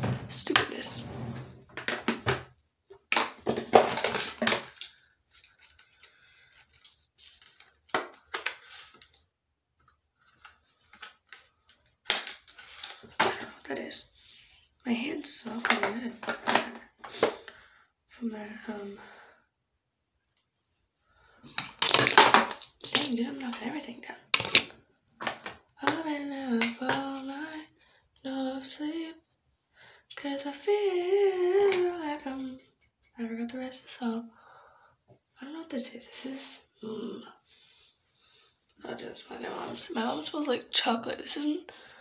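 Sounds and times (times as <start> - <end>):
makeup items and packaging rustling: 0.0 - 14.1, 14.9 - 17.5, 21.4 - 29.2
makeup items clattering: 1.7 - 4.8, 15.2 - 17.4, 24.3 - 26.0.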